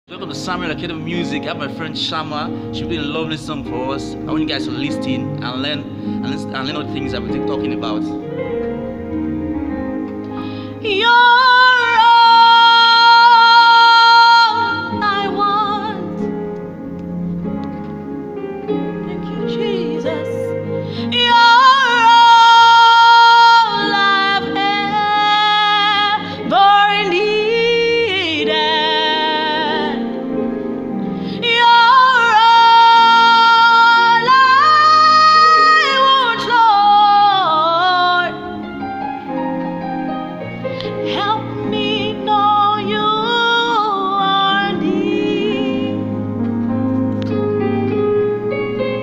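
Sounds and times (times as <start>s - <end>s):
low keyboard and bass: 0.1s - 49.0s
bass guitar: 2.9s - 10.5s
woman singing with vibrato: 10.5s - 16.3s, 19.0s - 30.3s, 31.2s - 38.7s, 41.0s - 46.2s.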